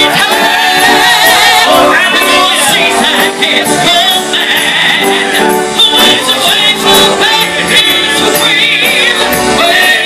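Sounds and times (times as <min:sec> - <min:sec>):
voices singing along: 0:00.0 - 0:10.0.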